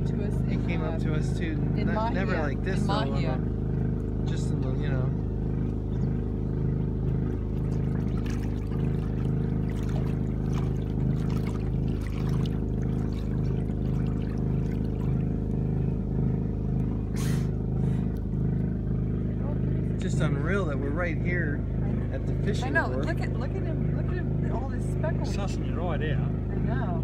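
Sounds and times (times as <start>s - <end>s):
generator humming: 0.0s - 27.0s.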